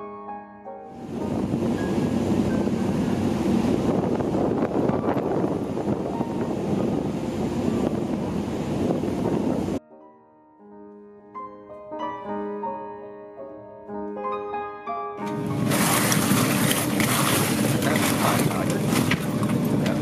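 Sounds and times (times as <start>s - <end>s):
piano music: 0.0s - 20.0s
wind buffeting microphone: 1.0s - 9.8s, 15.3s - 20.0s
rushing water: 15.2s - 20.0s.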